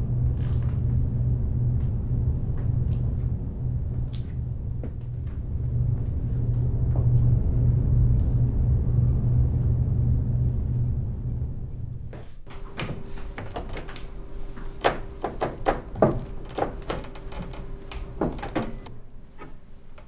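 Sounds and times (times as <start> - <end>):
low rumbling drone: 0.0 - 19.3.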